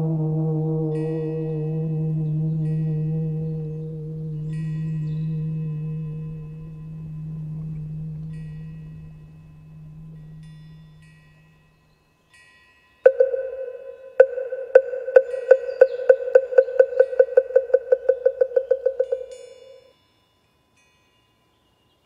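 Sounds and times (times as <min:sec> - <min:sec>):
deep bell ringing: 0:00.0 - 0:12.0
high chime tinkles: 0:04.4 - 0:14.2, 0:19.0 - 0:22.0.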